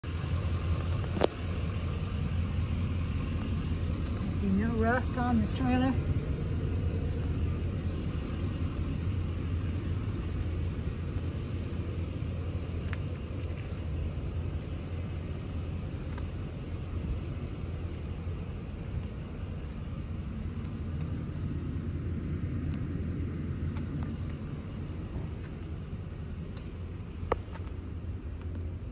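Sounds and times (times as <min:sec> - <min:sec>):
steady low rumble: 0:00.0 - 0:28.9.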